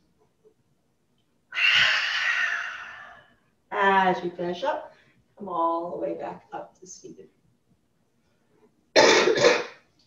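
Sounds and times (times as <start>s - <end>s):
woman exhaling forcefully: 1.6s - 3.2s.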